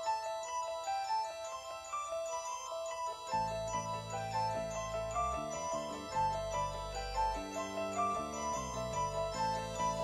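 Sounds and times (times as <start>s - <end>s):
steady bass line: 3.4s - 10.0s.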